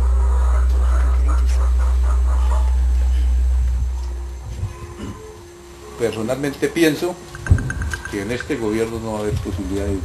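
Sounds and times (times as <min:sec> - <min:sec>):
loud deep hum: 0:00.0 - 0:06.0
low knocks: 0:07.4 - 0:08.1.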